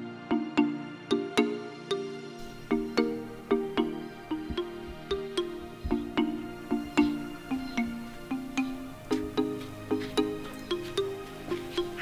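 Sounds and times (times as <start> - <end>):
plucked string music: 0.5 - 12.0.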